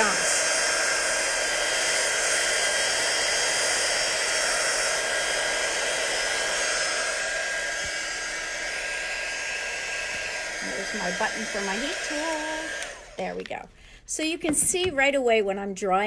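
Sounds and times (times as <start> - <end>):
heat tool blowing with motor whine: 0.0 - 13.6.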